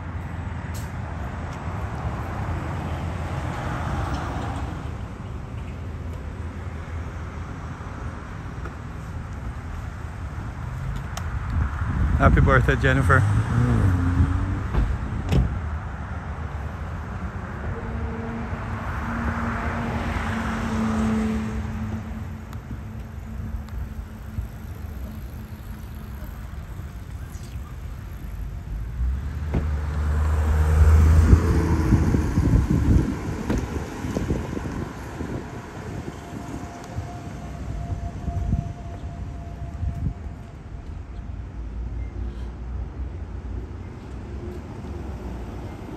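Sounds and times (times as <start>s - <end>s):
car engine hum: 0.0s - 38.8s
road noise: 0.0s - 45.9s
wind rumble on microphone: 10.4s - 16.5s, 30.7s - 41.5s
car door shutting: 14.7s - 15.6s.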